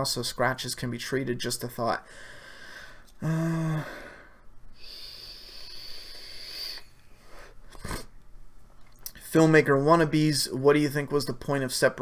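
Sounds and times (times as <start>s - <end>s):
person breathing: 2.0s - 8.0s.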